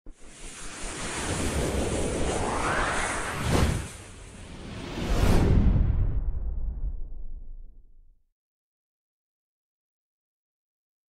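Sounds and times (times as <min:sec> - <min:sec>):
rushing whoosh: 0:00.2 - 0:07.4.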